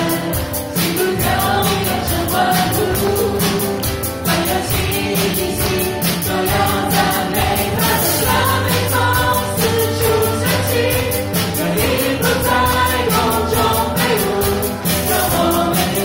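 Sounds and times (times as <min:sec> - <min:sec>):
drums: 0:00.0 - 0:16.0
guitar: 0:00.0 - 0:16.0
keyboard: 0:00.0 - 0:16.0
sustained bass: 0:00.0 - 0:16.0
vocalists singing together: 0:00.0 - 0:16.0.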